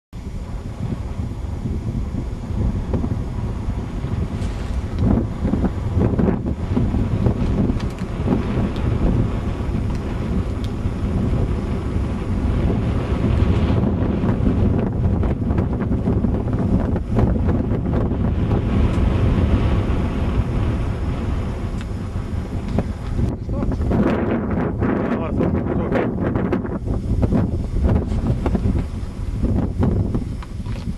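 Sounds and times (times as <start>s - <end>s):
wind buffeting microphone: 0.2s - 30.9s.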